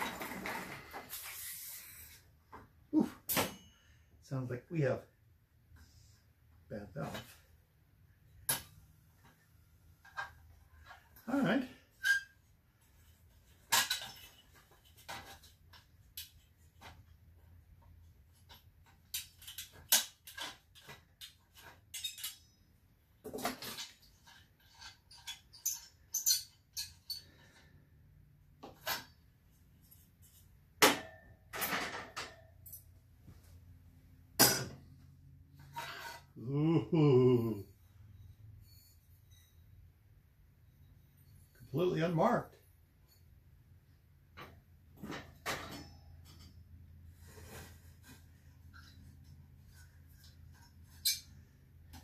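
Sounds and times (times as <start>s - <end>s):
light metal clinks and knocks: 31.2s - 33.4s.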